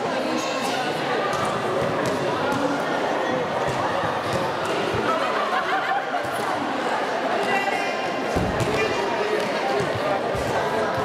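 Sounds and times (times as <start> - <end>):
ball bouncing on hall floor: 1.3 - 2.8, 3.6 - 5.1, 8.4 - 11.0.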